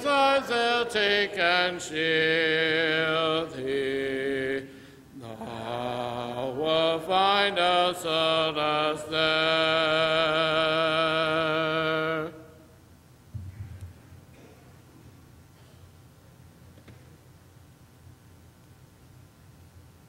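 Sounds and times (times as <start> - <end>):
congregation singing a hymn: 0.0 - 12.7.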